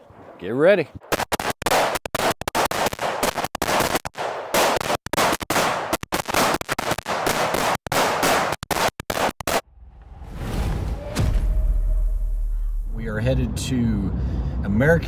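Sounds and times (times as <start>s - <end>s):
rifle shots in fast strings: 1.0s - 9.6s.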